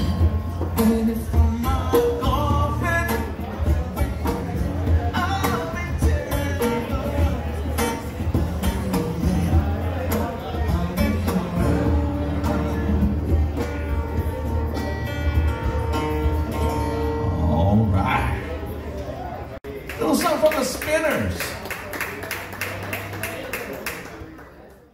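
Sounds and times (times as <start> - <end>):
conga drums: 0.0 - 16.6
strummed acoustic guitar: 0.0 - 19.0.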